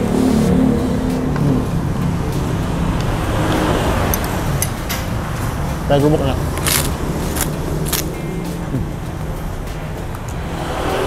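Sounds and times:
passing vehicle engine hum: 0.0 - 11.0
steady low traffic rumble: 0.0 - 11.0.

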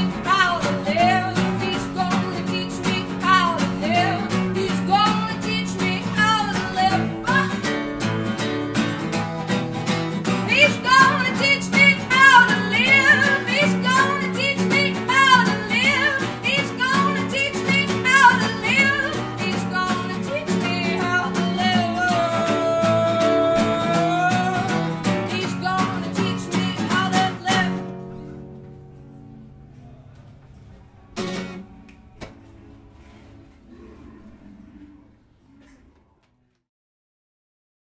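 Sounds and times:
woman singing with vibrato: 0.0 - 8.3, 10.3 - 28.2
strummed acoustic guitar: 0.0 - 33.6.

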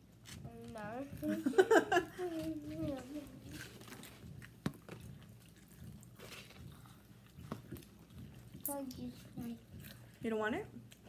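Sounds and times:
chewing and crunching food: 0.0 - 11.0.

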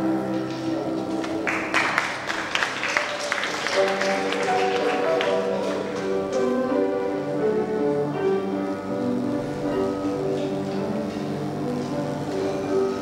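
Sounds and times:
scattered clapping: 0.5 - 6.5.

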